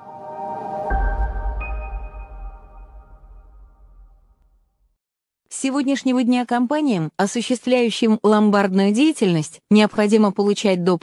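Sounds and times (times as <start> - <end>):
high ringing tone: 0.0 - 4.0
logo music sting: 0.0 - 4.4
deep low boom: 0.9 - 5.0.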